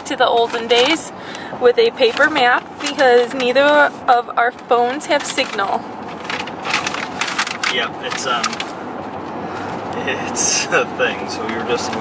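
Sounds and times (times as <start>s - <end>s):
steady background hum: 0.0s - 12.0s
paper map rustling and crinkling: 5.2s - 8.8s.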